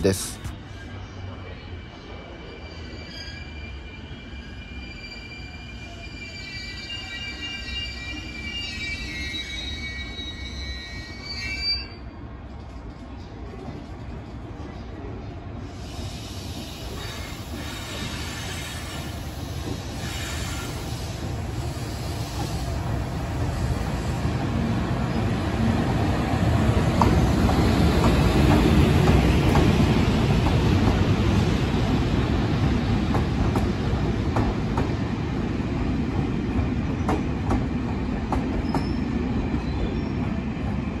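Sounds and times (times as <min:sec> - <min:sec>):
train wheels squealing: 0:00.6 - 0:12.2, 0:15.7 - 0:24.1, 0:38.5 - 0:40.4.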